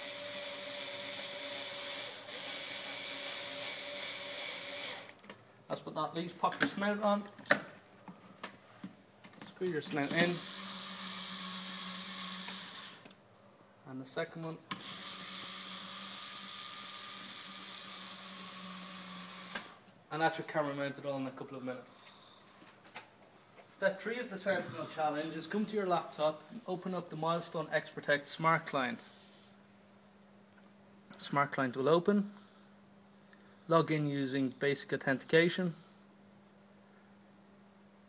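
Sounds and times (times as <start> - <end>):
electric screwdriver whining: 0.0 - 5.2, 10.0 - 13.1, 14.7 - 19.8.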